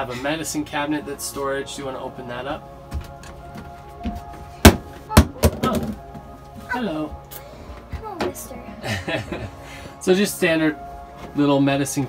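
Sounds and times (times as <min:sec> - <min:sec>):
cabinet door knocking: 0:04.7 - 0:06.0.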